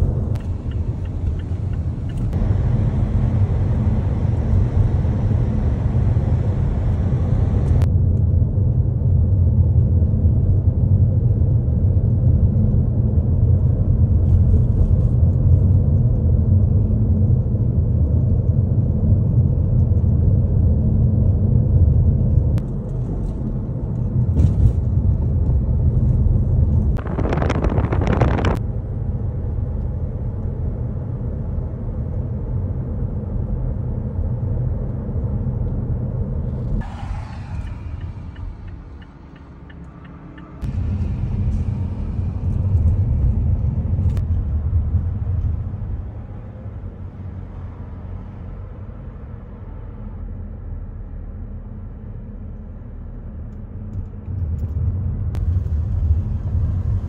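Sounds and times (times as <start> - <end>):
car engine and road rumble: 0.0 - 57.0
rush of noise: 26.4 - 28.9, 36.4 - 46.8.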